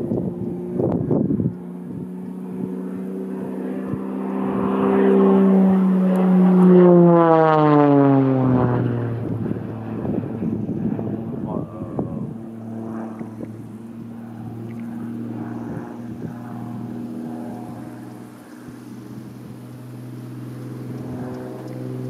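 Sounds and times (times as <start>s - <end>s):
propeller plane droning overhead: 0.0s - 22.0s.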